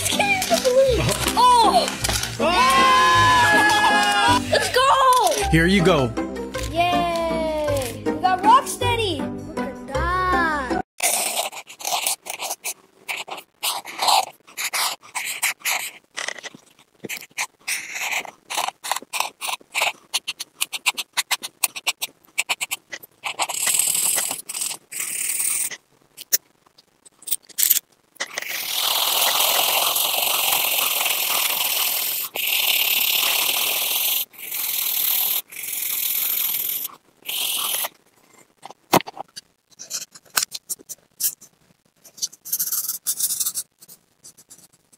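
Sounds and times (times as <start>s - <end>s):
marker pen scratching on paper: 11.0s - 25.8s, 27.6s - 44.9s.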